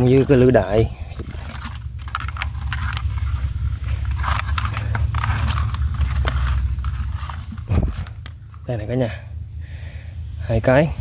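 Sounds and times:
low rumble: 0:00.0 - 0:11.0.

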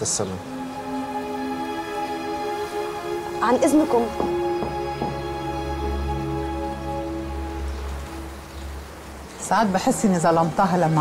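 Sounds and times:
soft sustained music notes: 0:00.0 - 0:11.0.

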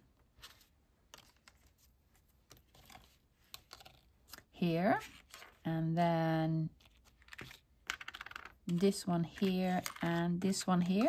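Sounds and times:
faint taps and paper rustles: 0:00.4 - 0:04.5.

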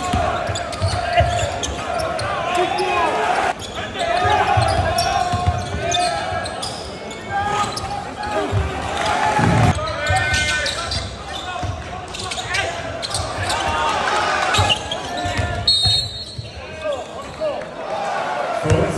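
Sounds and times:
echoing crowd voices: 0:00.0 - 0:18.9
basketball bouncing on court: 0:04.2 - 0:06.0, 0:11.6 - 0:11.9, 0:14.5 - 0:16.6.

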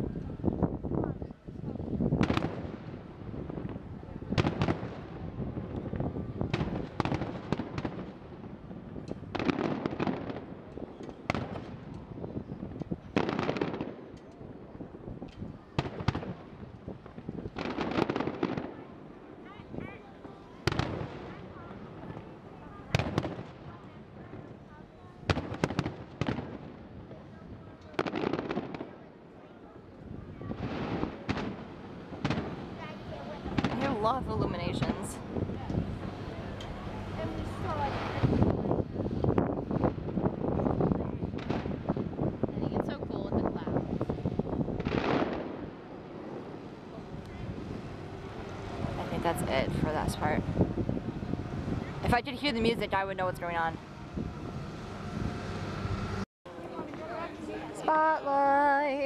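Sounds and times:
distant fireworks booming: 0:02.0 - 0:19.1, 0:20.2 - 0:24.5, 0:25.2 - 0:27.2, 0:27.9 - 0:29.2, 0:30.2 - 0:36.3, 0:37.4 - 0:42.5, 0:43.7 - 0:47.9.

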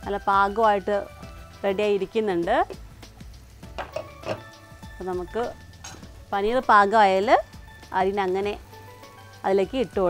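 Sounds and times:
woman's voice: 0:00.0 - 0:02.8, 0:05.0 - 0:05.6, 0:06.3 - 0:08.6, 0:09.4 - 0:10.0
soft background music: 0:00.0 - 0:10.0.

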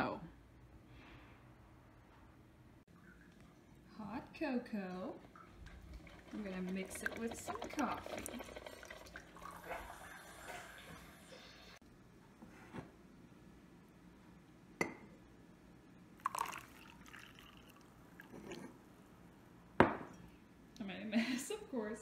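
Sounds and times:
coffee trickling into mug: 0:05.2 - 0:11.4, 0:16.2 - 0:18.8.

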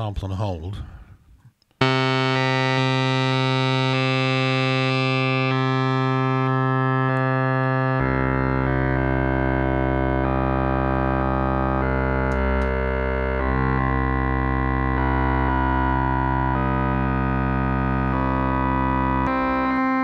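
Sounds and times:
analog synthesizer tone: 0:01.8 - 0:20.0.

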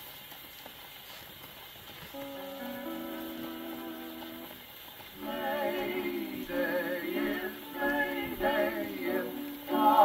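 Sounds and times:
record surface hiss and crackle: 0:00.0 - 0:10.0
dance band playing held chords: 0:05.2 - 0:10.0.

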